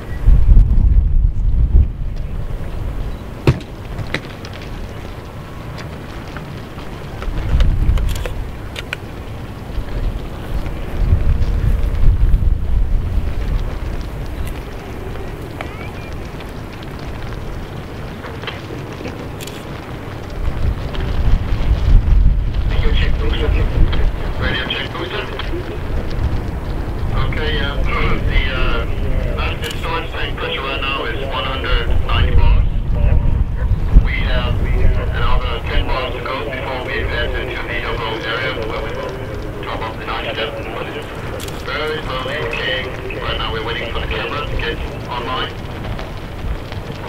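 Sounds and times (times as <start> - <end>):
wind buffeting microphone: 0.0 - 47.0
faint voices: 2.0 - 47.0
faint clicks: 3.0 - 31.7, 35.2 - 47.0.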